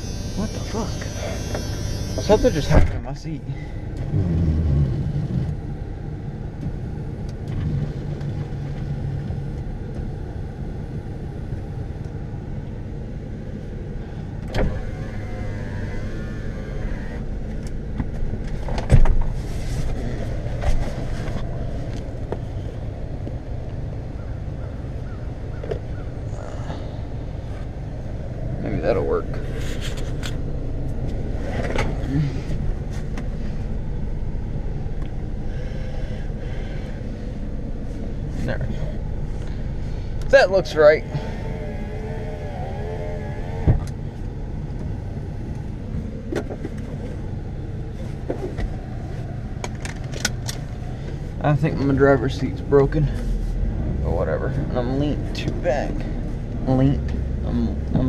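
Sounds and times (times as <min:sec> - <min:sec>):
engine rumbling: 0:00.0 - 0:58.0.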